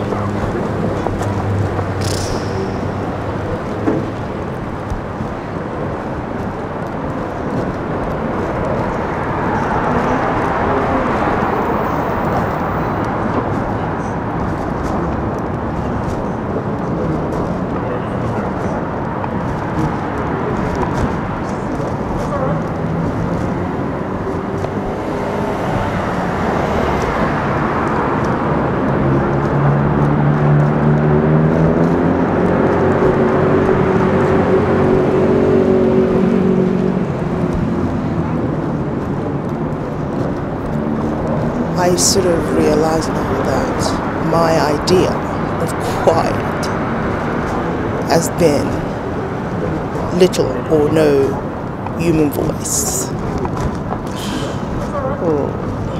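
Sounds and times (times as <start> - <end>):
passing road traffic: 0.0 - 55.9.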